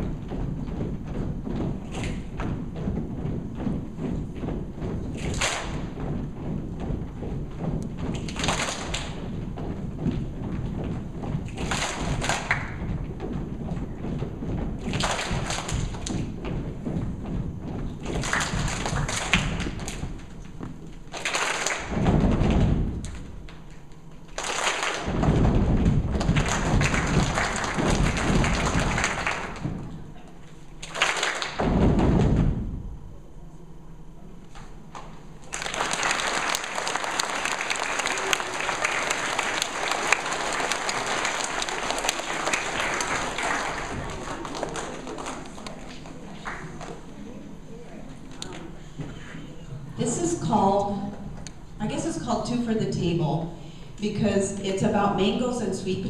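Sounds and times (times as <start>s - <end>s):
massed hand clapping: 0.0s - 32.5s, 34.5s - 47.2s
rhythmic thumps of pats and stomps: 0.0s - 33.3s, 33.9s - 47.6s
sharp slaps or claps: 1.6s - 2.5s, 5.1s - 6.1s, 7.6s - 9.4s, 10.0s - 13.0s, 14.8s - 16.5s, 18.0s - 30.0s, 30.8s - 32.5s, 34.5s - 47.0s.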